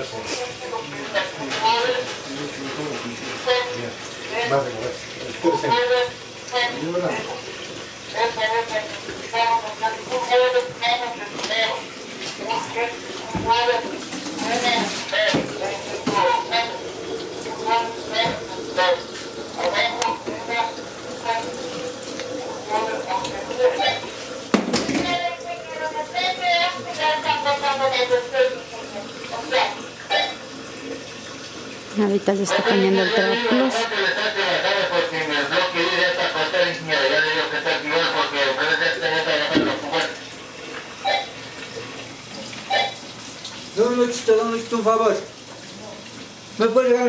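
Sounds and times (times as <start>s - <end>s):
voices talking: 0.4s - 7.4s, 8.0s - 30.5s, 31.9s - 40.2s
water splashing: 0.4s - 47.0s.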